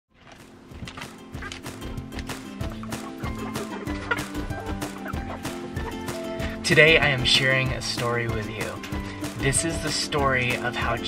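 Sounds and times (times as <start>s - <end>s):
background music with a beat: 0.4s - 11.0s
chickens clucking: 0.8s - 9.4s.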